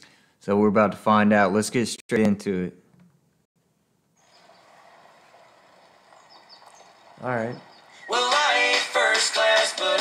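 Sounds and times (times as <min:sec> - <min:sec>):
soft outdoor hiss: 0:03.6 - 0:10.0.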